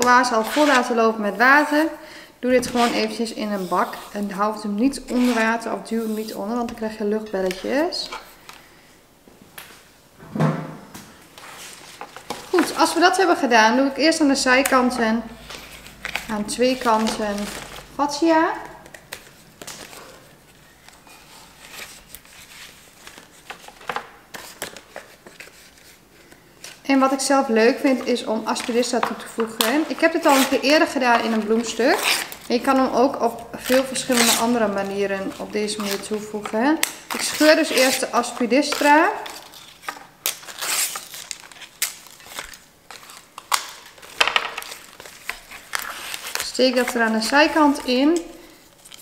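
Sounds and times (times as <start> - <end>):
leaf tearing: 33.6 - 36.2.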